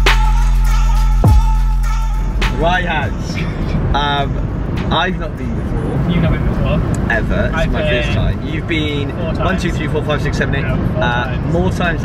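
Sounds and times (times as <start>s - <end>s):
car cabin road and engine rumble: 1.2s - 12.0s
voices: 2.4s - 12.0s.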